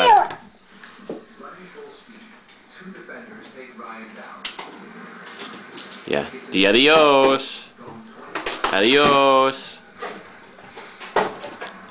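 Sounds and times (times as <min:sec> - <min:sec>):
young child babbling: 0:00.0 - 0:00.4.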